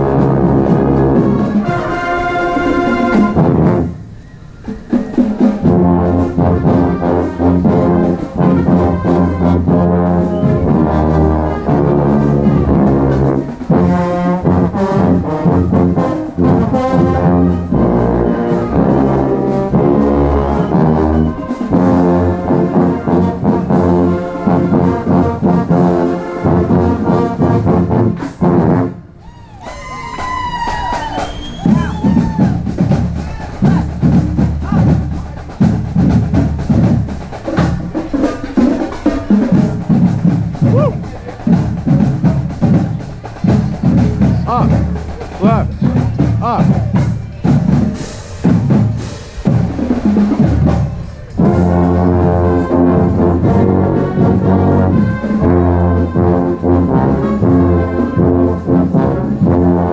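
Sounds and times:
trombone playing: 0.0s - 4.1s, 5.2s - 29.2s, 31.6s - 59.9s
marching band brass playing: 0.0s - 59.9s
knocks and squeals: 29.8s - 32.6s
talking voices: 38.9s - 47.8s.

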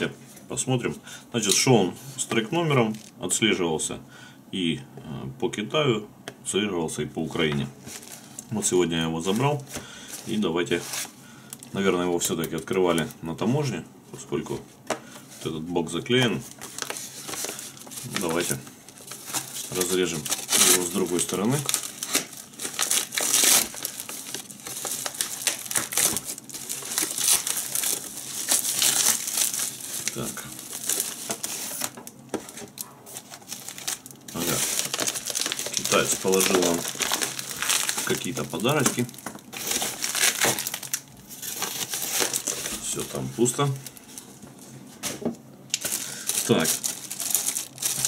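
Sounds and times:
plastic mailer crinkling and tearing: 7.8s - 13.2s, 16.1s - 44.3s, 45.7s - 48.0s.

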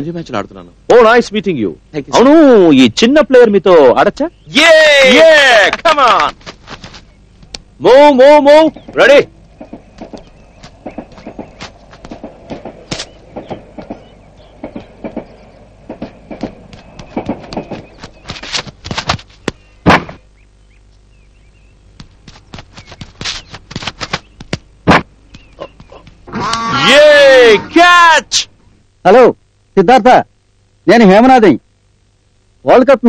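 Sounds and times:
running footfalls: 5.6s - 7.6s, 8.8s - 20.2s, 21.9s - 26.7s
cricket ball striking bat: 15.9s - 20.2s.

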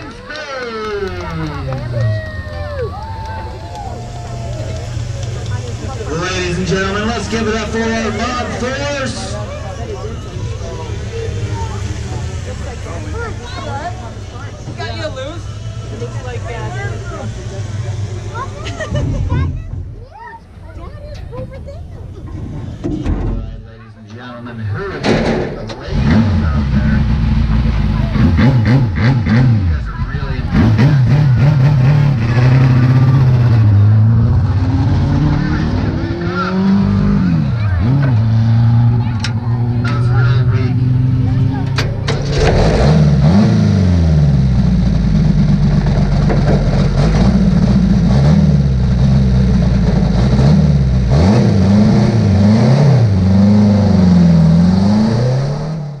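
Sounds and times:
race car engine revving: 0.0s - 19.8s, 24.4s - 56.0s.

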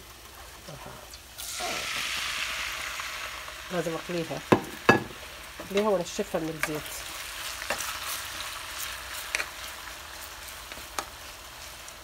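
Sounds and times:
potatoes sizzling in hot oil: 0.0s - 12.0s.

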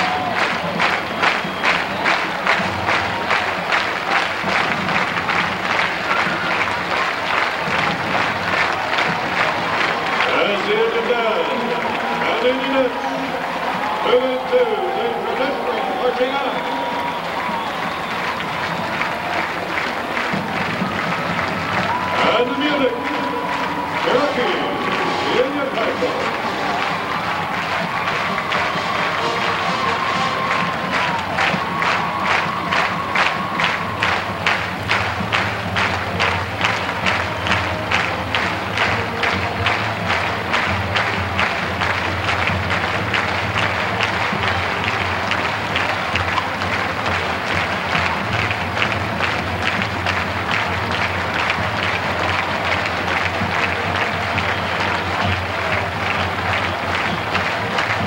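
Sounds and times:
applause: 0.0s - 58.0s
stadium crowd noise: 0.0s - 58.0s.

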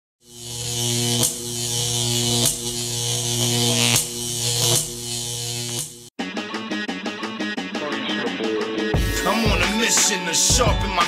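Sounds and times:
electric buzzing hum with hiss: 0.2s - 6.1s.

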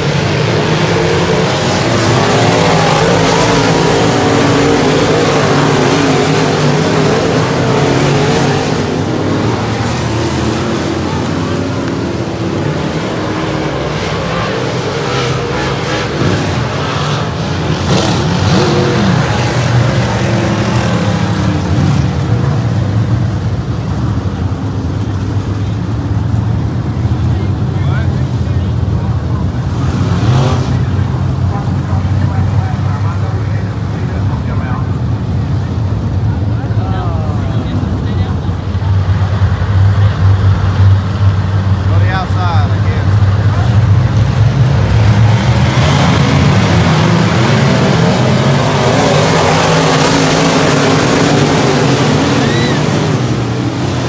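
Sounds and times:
race car engines: 0.0s - 54.0s.

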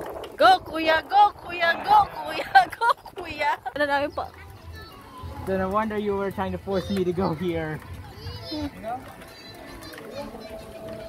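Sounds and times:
distant children and adults chatter: 1.4s - 11.0s.

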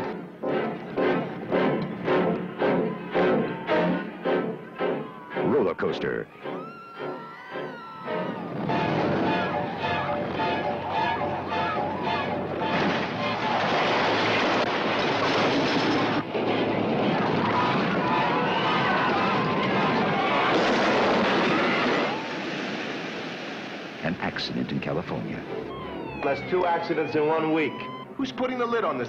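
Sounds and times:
riders screaming: 6.3s - 14.5s, 17.0s - 22.4s, 25.5s - 28.5s
roller coaster roaring on track: 6.6s - 22.8s, 25.1s - 29.0s.

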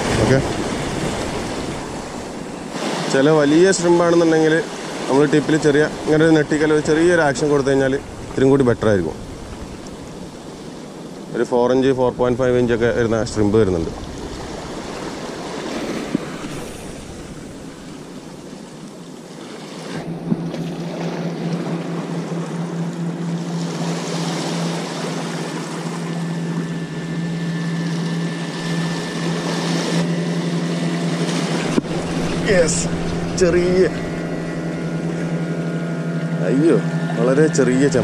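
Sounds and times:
boat engine drone: 0.0s - 38.0s
sea waves washing against rocks: 0.0s - 38.0s
wind: 0.0s - 38.0s.

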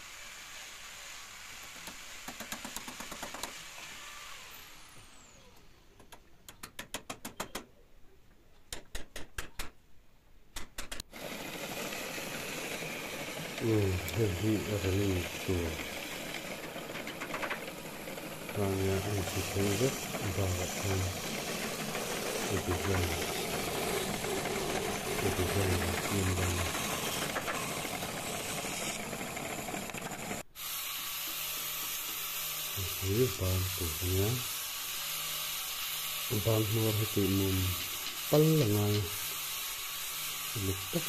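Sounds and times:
band saw cutting wood: 11.1s - 41.0s.

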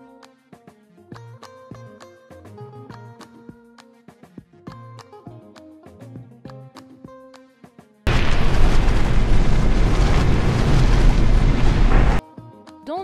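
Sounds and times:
light music with plucked notes: 0.0s - 8.0s, 12.2s - 13.0s
loud explosion sound effect: 8.1s - 12.2s.

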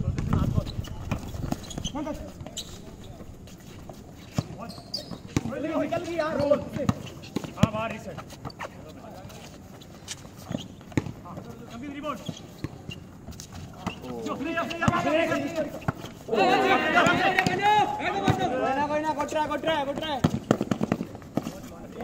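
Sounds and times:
basketball bouncing on concrete: 0.0s - 9.4s, 10.6s - 11.7s, 17.0s - 18.6s, 19.8s - 22.0s
players shouting: 13.9s - 20.3s.

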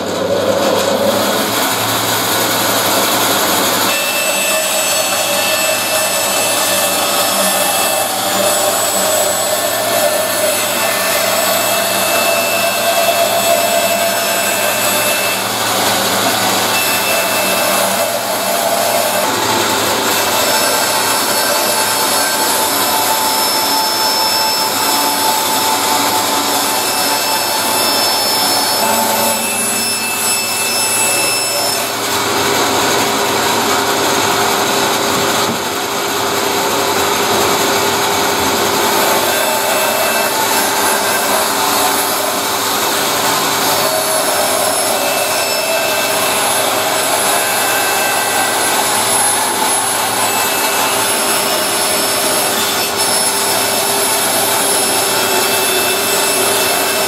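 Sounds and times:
bandsaw cutting wood: 0.0s - 57.0s.

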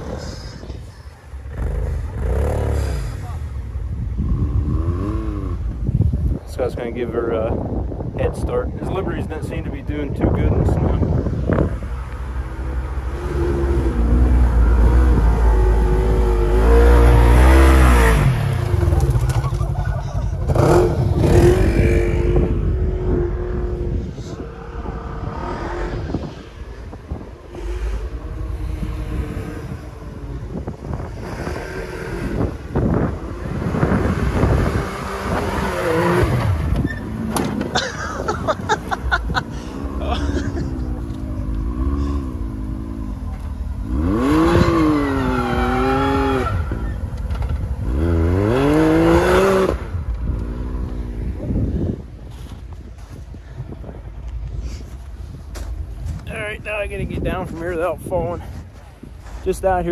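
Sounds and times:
utv engines revving: 0.0s - 59.9s.

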